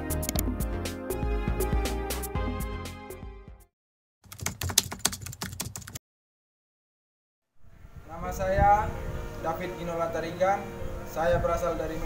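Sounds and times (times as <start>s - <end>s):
computer keyboard typing: 4.3s - 6.0s.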